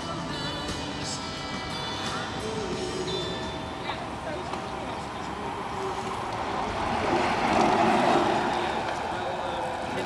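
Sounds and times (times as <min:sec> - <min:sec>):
faint voices: 0:00.0 - 0:10.0
street noise: 0:00.0 - 0:10.0
rushing noise: 0:05.4 - 0:10.0.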